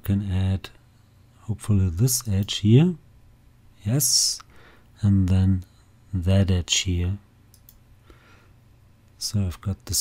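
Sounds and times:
computer mouse clicks: 7.5s - 7.8s.

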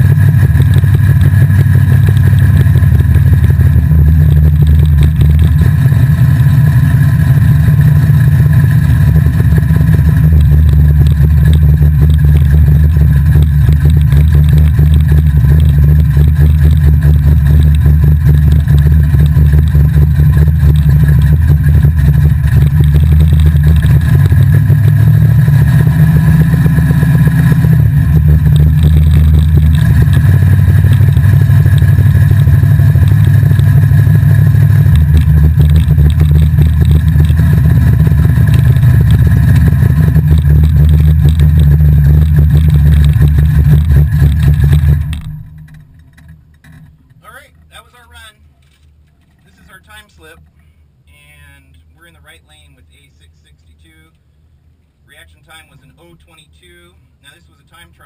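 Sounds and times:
race car engine pulsing exhaust: 0.0s - 58.0s.

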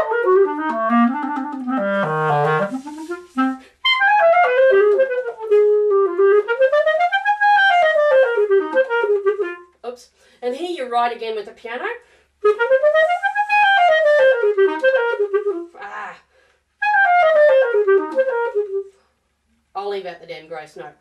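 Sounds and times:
clarinet slow melody: 0.0s - 9.8s, 12.4s - 16.2s, 16.8s - 19.0s
person saying oops: 15.7s - 16.3s.

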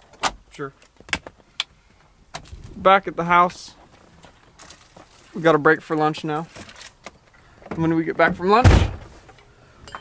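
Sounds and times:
plastic bag rustling: 4.0s - 5.5s.

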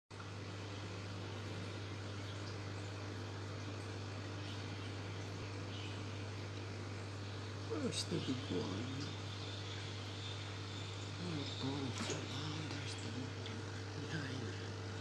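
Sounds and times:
steady low hum: 0.1s - 15.0s.

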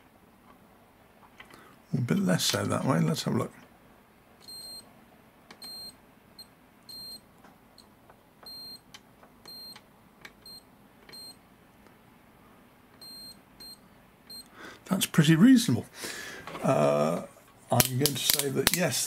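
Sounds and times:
multimeter short beeps: 4.4s - 4.8s, 5.6s - 6.0s, 6.9s - 7.2s, 8.5s - 8.8s, 9.5s - 9.8s, 13.0s - 14.4s.

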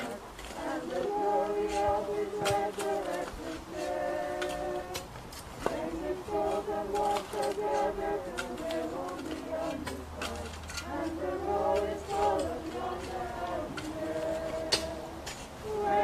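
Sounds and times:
mourners singing a hymn: 0.0s - 16.0s.

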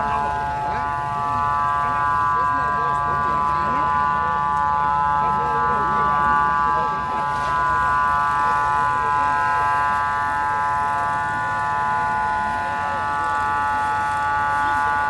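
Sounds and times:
crowd murmur: 0.0s - 15.0s
machine whining high-pitched: 0.0s - 15.0s.

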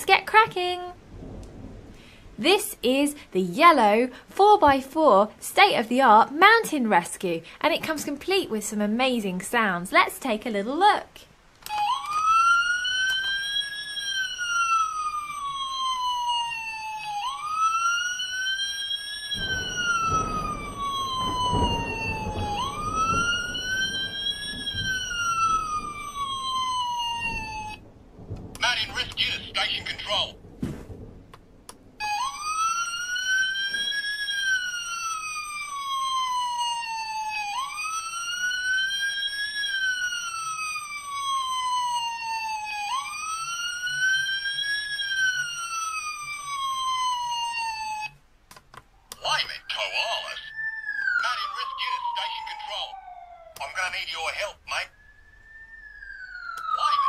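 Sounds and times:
rough rumbling noise: 0.1s - 2.9s, 19.3s - 32.0s
toy electronic siren wailing: 11.6s - 27.8s, 32.0s - 48.2s, 49.1s - 57.0s.

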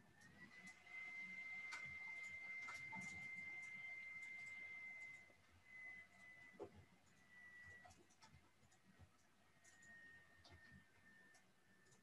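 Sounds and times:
faint high-pitched tone: 0.4s - 8.0s
soft clicks: 5.9s - 12.0s.

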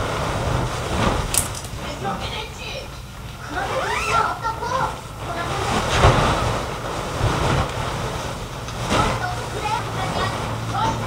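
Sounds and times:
fabric rustling and swishing: 0.0s - 2.0s, 4.9s - 11.0s.

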